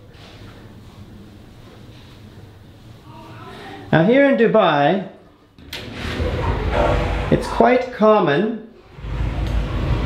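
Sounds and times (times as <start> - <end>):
sliding glass door rumbling: 5.6 - 7.9, 8.8 - 10.0.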